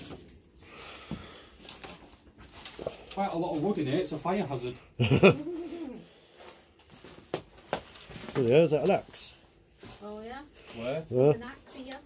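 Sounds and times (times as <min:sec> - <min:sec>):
movement over rubble and twigs: 0:00.0 - 0:12.0.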